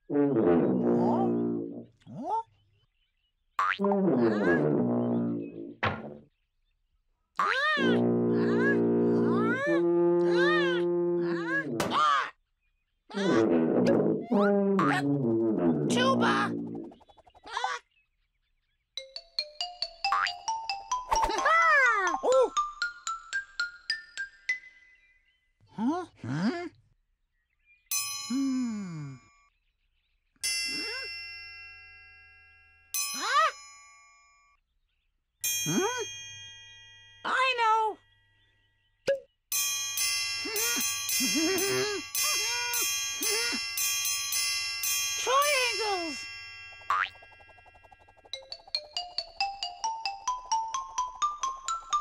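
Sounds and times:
sliding-pitch cartoon sounds: 4.1s - 5.5s, 40.4s - 44.0s, 45.2s - 46.3s
children's music: 19.0s - 24.9s, 39.6s - 47.1s, 48.4s - 52.0s
chime-like notes: 27.9s - 29.5s, 30.4s - 34.5s, 35.4s - 37.4s, 39.5s - 52.0s.

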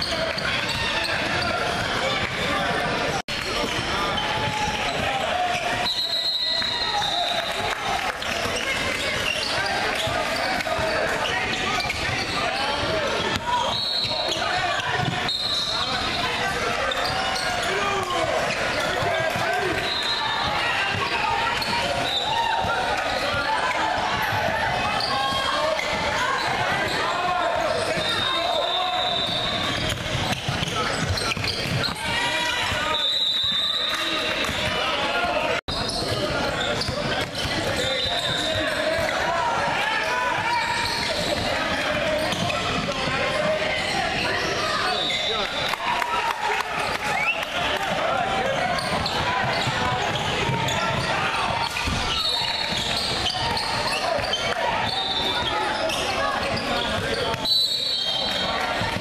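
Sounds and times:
overlapping voices: 0.0s - 13.6s, 33.6s - 57.4s.

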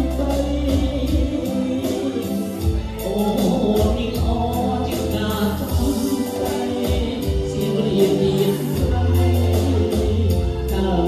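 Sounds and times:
live dance band playing rumba: 0.0s - 11.0s.

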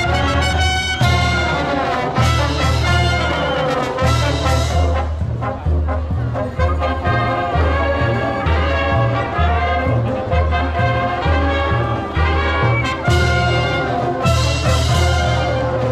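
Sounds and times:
marching brass band playing: 0.0s - 15.9s.

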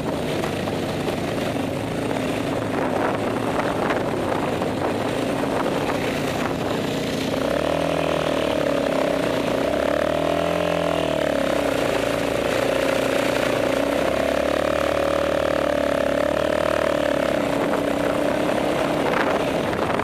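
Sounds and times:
quad bike engine running: 0.0s - 20.0s.

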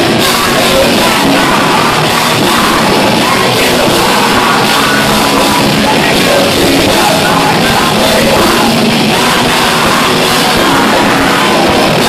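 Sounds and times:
live punk band playing: 0.0s - 12.0s
shouted lead vocal: 0.0s - 12.0s.

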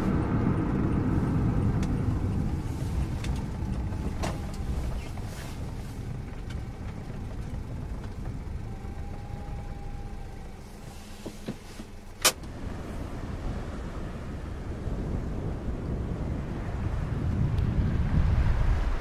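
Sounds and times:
car rolling low rumble: 0.0s - 19.0s
wind on microphone: 12.5s - 19.0s.

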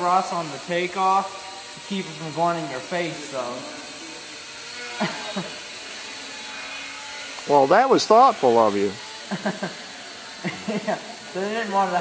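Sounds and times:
quadcopter motors whining: 0.0s - 12.0s.

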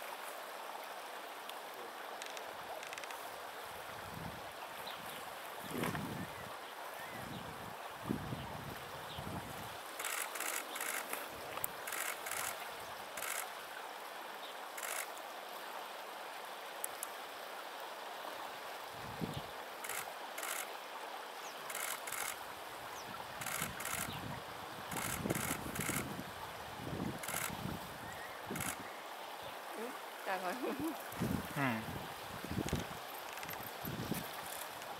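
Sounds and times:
steady outdoor hiss: 0.0s - 34.9s
person murmuring mm: 31.5s - 32.0s.

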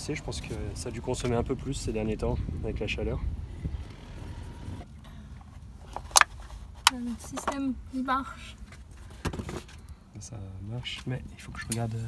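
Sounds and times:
low rumble: 0.0s - 5.9s.

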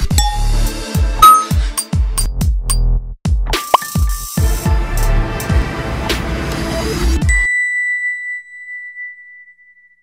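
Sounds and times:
electronic music: 0.0s - 2.0s
bright ding chime: 0.2s - 0.6s, 1.2s - 1.6s, 7.3s - 10.0s.

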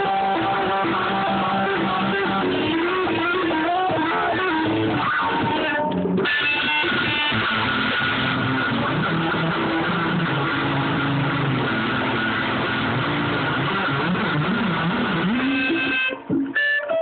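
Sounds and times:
distorted electric guitar: 0.0s - 17.0s.

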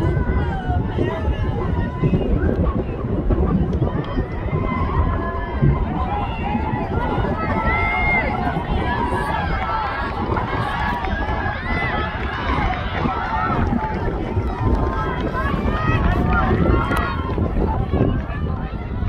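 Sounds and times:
spectators shouting: 0.0s - 19.0s
wind rumbling on microphone: 0.0s - 19.0s.

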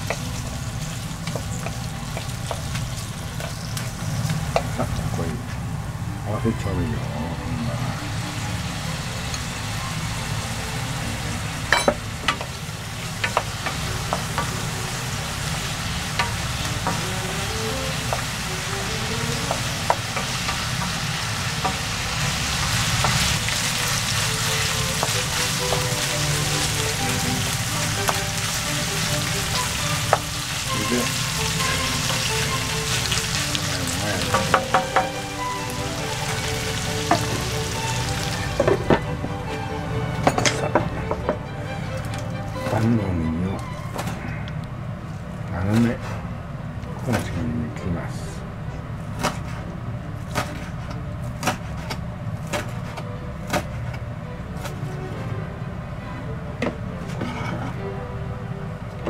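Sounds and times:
food sizzling in a frying pan: 0.0s - 5.2s, 7.8s - 38.9s
wooden spatula knocking pan: 34.2s - 35.3s.

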